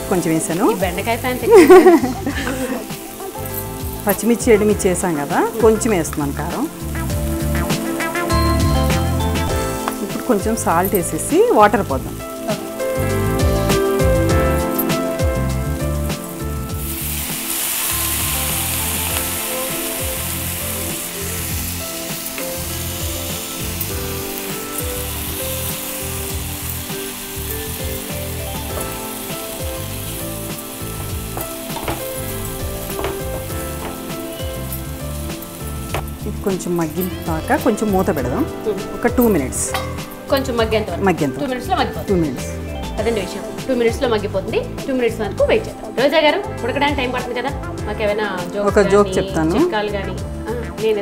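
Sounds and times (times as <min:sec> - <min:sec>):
food sizzling in a frying pan: 0:00.0 - 0:51.0.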